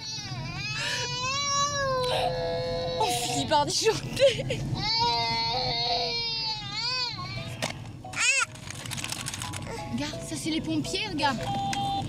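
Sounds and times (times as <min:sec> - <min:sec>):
toddler crying: 0:00.0 - 0:03.5, 0:04.8 - 0:07.5, 0:08.2 - 0:08.5
car interior hum: 0:00.0 - 0:12.0.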